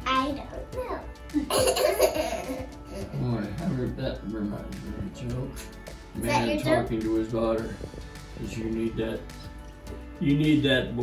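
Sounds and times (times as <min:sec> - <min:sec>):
background music: 0:00.0 - 0:11.0
child giggling: 0:01.3 - 0:03.2.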